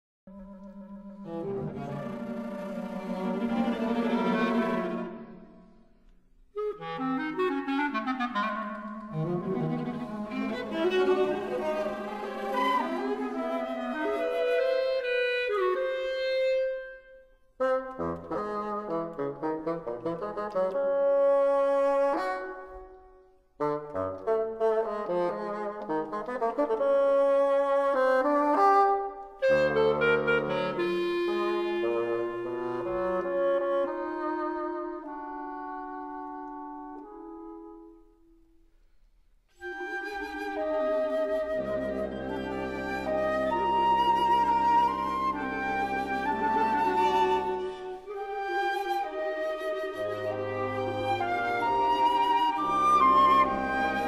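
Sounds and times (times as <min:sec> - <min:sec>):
woodwinds and strings ensemble: 0:00.3 - 0:54.0.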